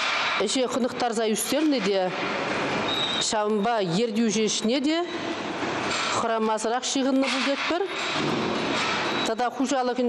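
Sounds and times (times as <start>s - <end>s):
steady background noise: 0.0s - 10.0s
woman speaking: 0.4s - 2.2s, 3.2s - 5.2s, 6.2s - 8.0s, 9.2s - 10.0s.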